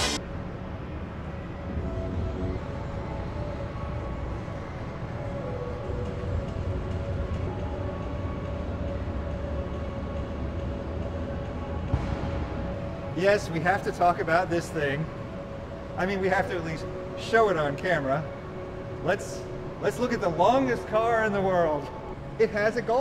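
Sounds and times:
low rumble of indoor hall: 0.0 - 23.0.

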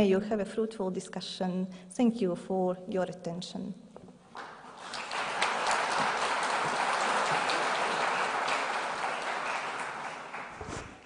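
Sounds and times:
audience applauding: 4.4 - 11.0.

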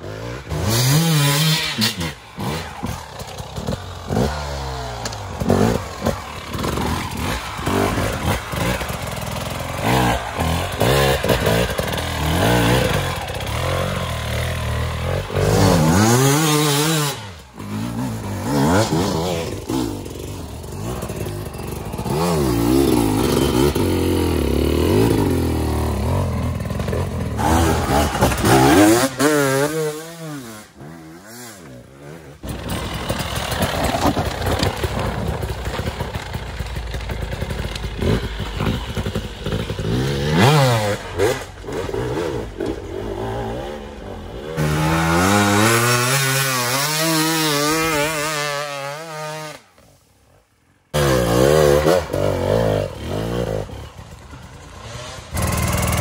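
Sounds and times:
dirt bike engines revving: 0.0 - 50.0, 50.7 - 56.0.

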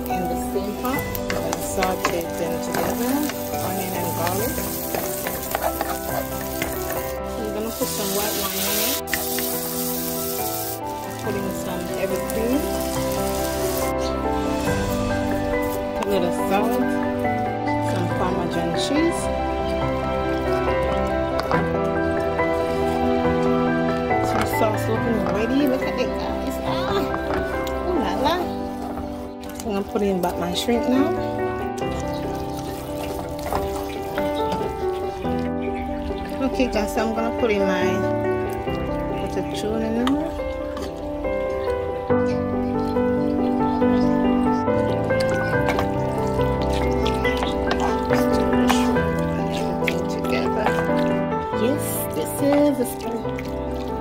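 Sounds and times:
onion and garlic sizzling in a pan: 0.0 - 16.8
background music with held notes: 0.0 - 54.0.

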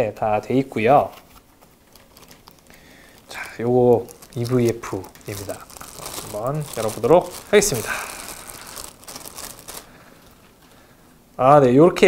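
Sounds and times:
plastic bag crinkling: 1.0 - 10.8.

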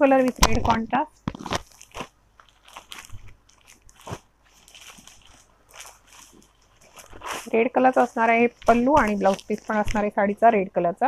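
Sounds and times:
silk fabric rustling and crackling: 0.0 - 10.5.

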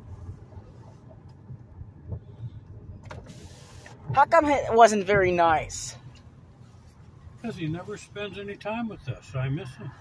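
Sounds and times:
car interior road rumble: 0.0 - 10.0
short hiss: 3.1 - 4.0.

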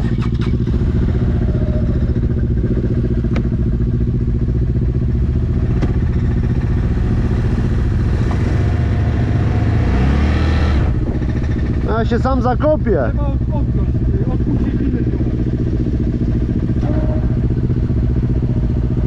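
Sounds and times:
quad engine idling: 0.0 - 9.8, 10.8 - 19.0.

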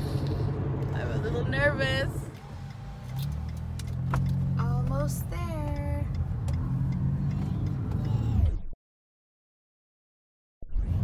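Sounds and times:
car road and engine rumble: 0.0 - 8.7.

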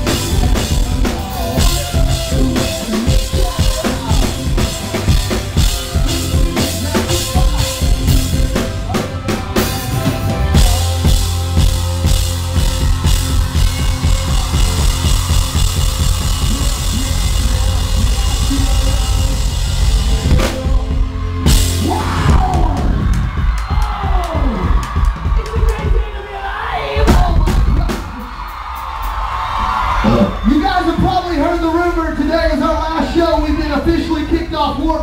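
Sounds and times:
drum hits: 0.0 - 26.1, 27.0 - 28.3
live rock band playing: 0.0 - 26.1.

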